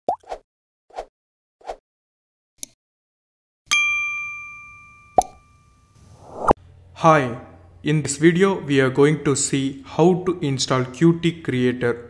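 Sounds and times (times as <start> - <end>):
rising blip: 6.1 - 6.6.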